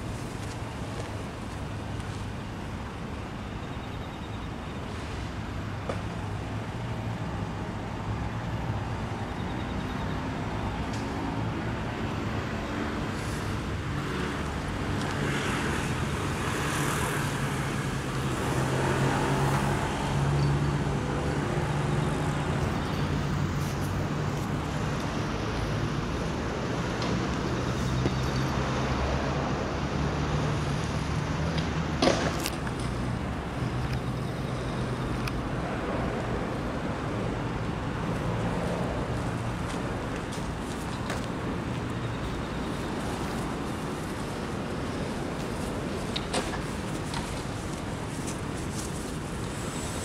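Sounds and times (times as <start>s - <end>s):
road noise: 0.0s - 50.0s
vehicle engine hum: 0.0s - 50.0s.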